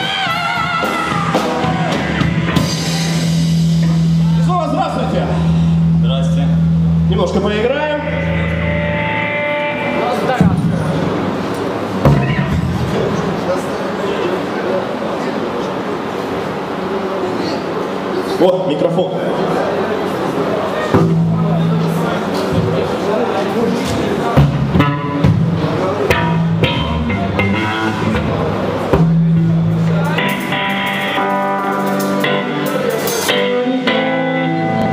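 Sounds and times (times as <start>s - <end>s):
held electric guitar chords: 0.0s - 13.5s, 20.6s - 34.9s
sustained amplified rock band notes: 0.0s - 15.0s, 18.8s - 34.9s
drum hits: 10.3s - 13.4s, 21.0s - 23.0s, 23.8s - 32.2s.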